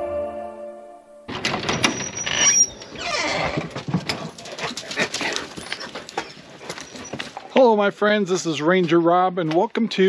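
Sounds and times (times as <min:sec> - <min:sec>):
dogs whining and yelping: 0:01.9 - 0:07.4.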